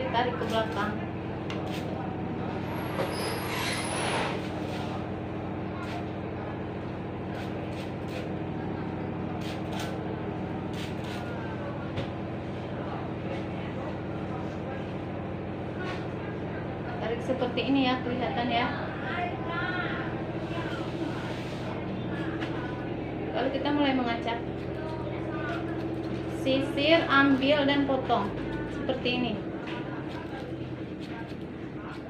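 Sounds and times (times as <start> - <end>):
low electric hum: 0.0 - 32.0.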